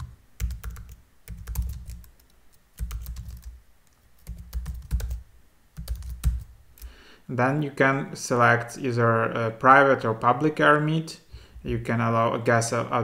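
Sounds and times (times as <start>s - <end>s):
typing on computer keyboard: 0.0s - 5.2s, 5.8s - 6.9s.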